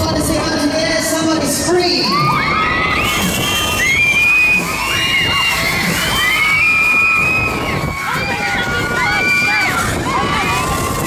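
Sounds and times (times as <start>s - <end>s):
noisy background: 0.0s - 11.0s
ride riders screaming: 1.9s - 11.0s.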